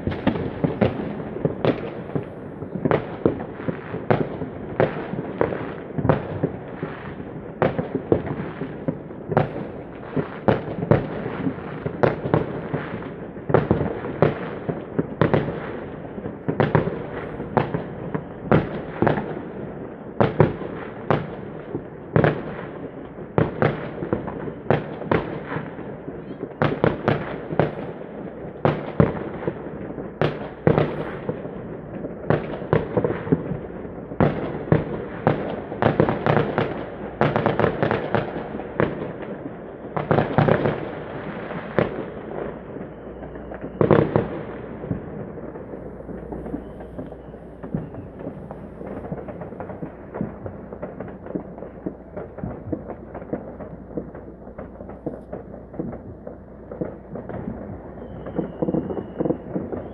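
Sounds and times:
fireworks and firecrackers banging: 0:00.0 - 0:59.9.

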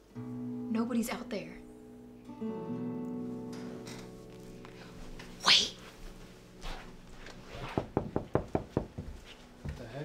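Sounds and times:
guitar music: 0:00.0 - 0:07.5.

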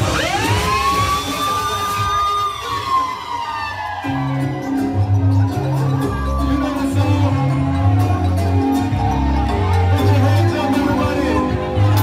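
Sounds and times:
siren-like electronic tone: 0:00.0 - 0:05.1
live band with bass beat: 0:04.0 - 0:12.0.

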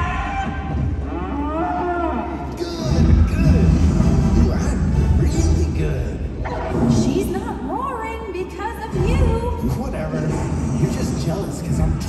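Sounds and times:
steady low rumble: 0:02.5 - 0:12.0.

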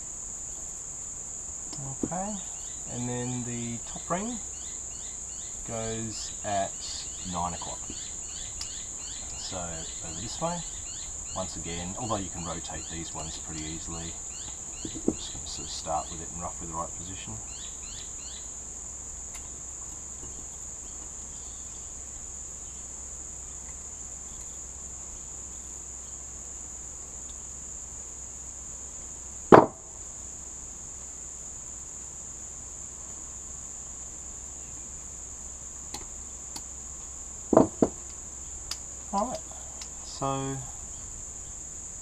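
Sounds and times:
high-pitched whine: 0:01.6 - 0:18.6.

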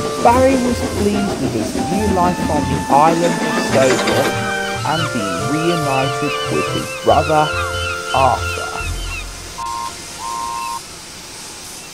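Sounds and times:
faint hiss: 0:00.0 - 0:11.9
steam engine whistle toots: 0:00.0 - 0:11.9.

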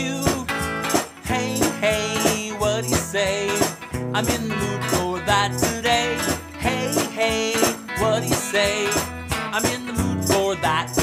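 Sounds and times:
foot tambourine jingling: 0:00.0 - 0:11.0
man singing: 0:00.0 - 0:11.0
strummed electric guitar: 0:00.0 - 0:11.0.

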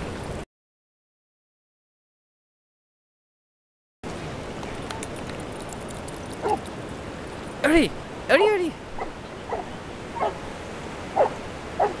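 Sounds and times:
dog yipping: 0:06.4 - 0:06.7, 0:09.0 - 0:10.4, 0:11.2 - 0:12.0.

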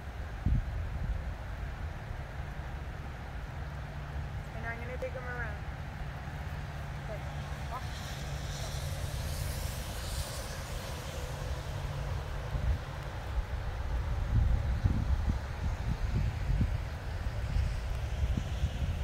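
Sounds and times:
wind buffeting microphone: 0:00.0 - 0:02.9, 0:04.5 - 0:19.0.

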